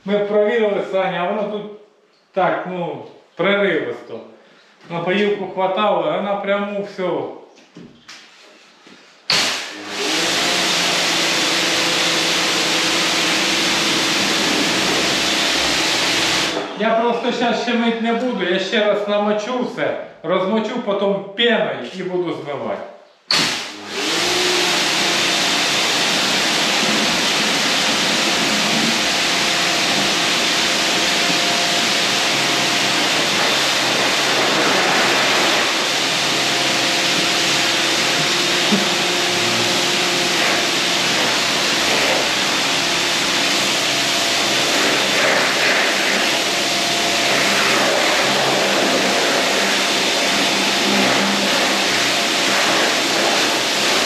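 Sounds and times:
pressure washer spraying concrete: 9.3 - 16.6, 23.3 - 54.0.

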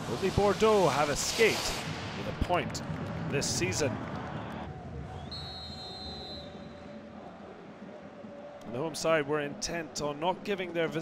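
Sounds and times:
stadium crowd noise: 0.0 - 11.0
referee's whistle: 5.2 - 7.0.

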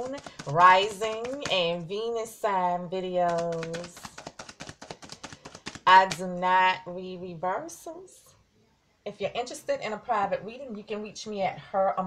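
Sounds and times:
cards being shuffled: 0.0 - 1.8, 3.2 - 6.3.

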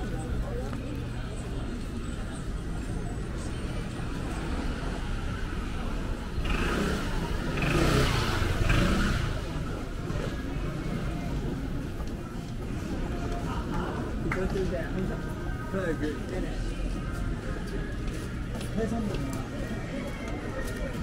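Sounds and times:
street crowd noise: 0.0 - 21.0
motor scooter passing: 4.0 - 11.8.

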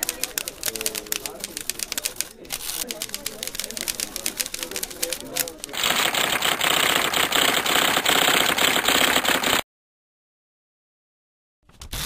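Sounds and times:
typewriter keystrokes: 0.0 - 9.6.

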